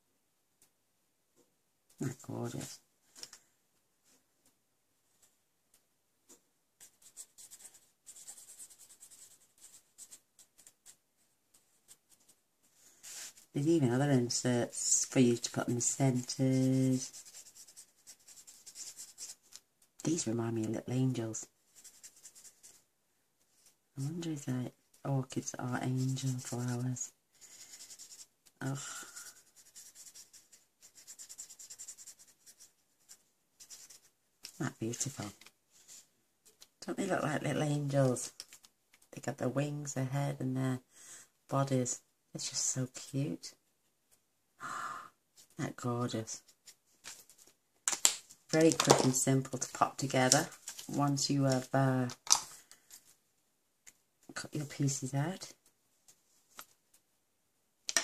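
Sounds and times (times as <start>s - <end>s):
brush pen rubbing on cardstock: 6.8s - 11.0s, 15.9s - 19.6s, 21.7s - 22.8s, 25.9s - 28.3s, 29.1s - 34.1s
brush tip scratching on cardstock: 16.1s - 19.6s.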